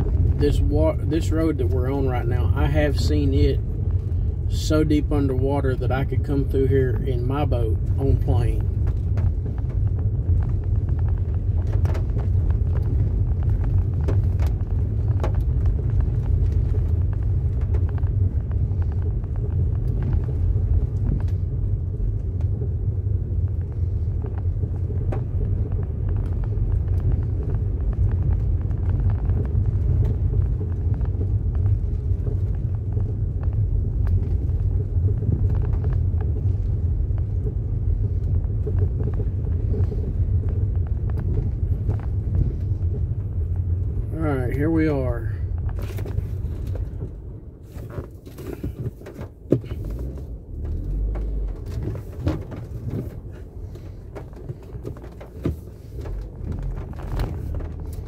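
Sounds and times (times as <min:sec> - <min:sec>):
vehicle engine and tyre rumble: 0:00.0 - 0:58.0.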